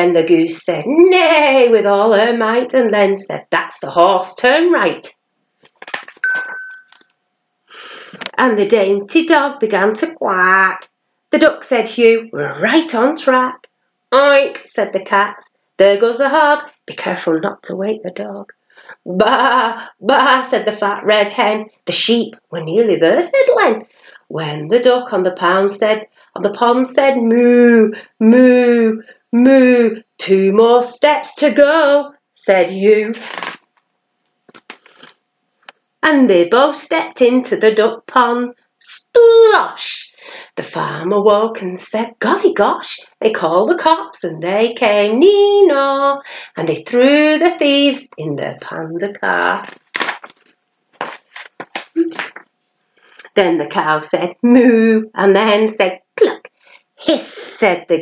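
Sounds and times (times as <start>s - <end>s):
book page turning: 5.6s - 6.3s, 34.5s - 35.2s, 49.6s - 52.5s.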